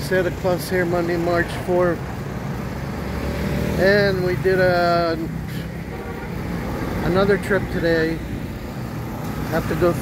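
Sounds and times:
man speaking: 0:00.0 - 0:02.1, 0:03.8 - 0:05.6, 0:07.0 - 0:08.3, 0:09.5 - 0:10.0
low rumble of street traffic: 0:00.0 - 0:10.0.

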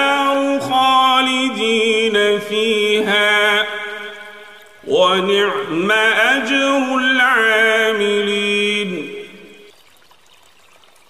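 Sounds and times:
man chanting: 0:00.0 - 0:09.6
faint running water: 0:00.0 - 0:11.0.

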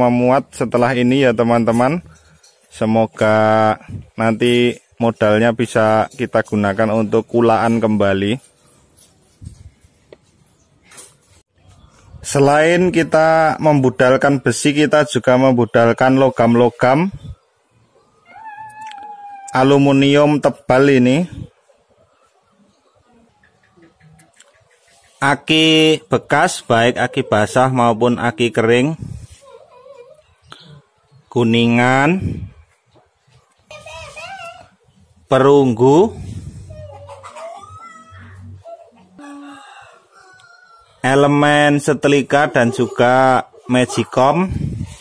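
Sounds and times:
rooster crowing: 0:39.2 - 0:41.0.

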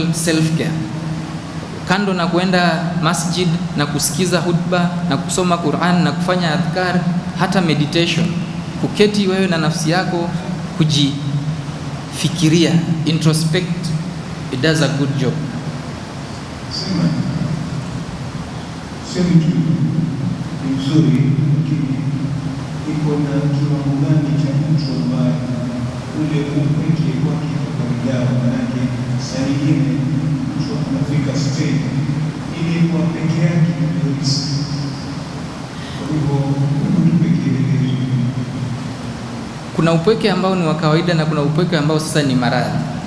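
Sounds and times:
man speaking indistinctly: 0:00.0 - 0:01.0, 0:01.8 - 0:11.4, 0:12.1 - 0:15.6, 0:16.7 - 0:17.7, 0:19.0 - 0:20.0, 0:20.6 - 0:34.9, 0:35.8 - 0:38.4, 0:39.7 - 0:43.0
background hiss and hum: 0:00.0 - 0:43.0.

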